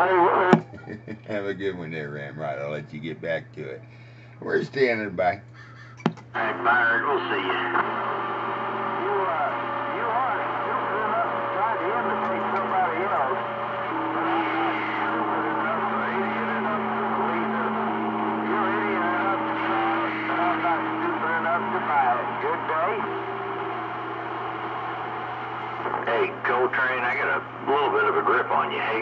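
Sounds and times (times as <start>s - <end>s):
garbled radio voices: 0.0s - 3.7s, 5.7s - 29.0s
radio static: 0.0s - 3.7s, 6.4s - 29.0s
low hum: 5.4s - 29.0s.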